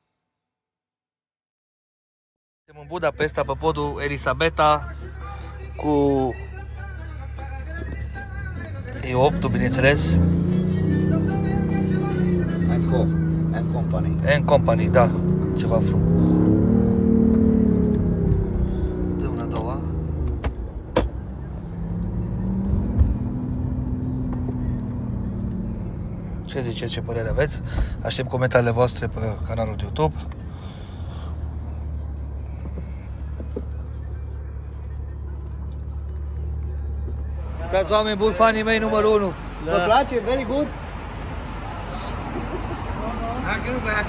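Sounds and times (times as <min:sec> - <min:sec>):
car engine droning hum: 0:02.8 - 0:44.0.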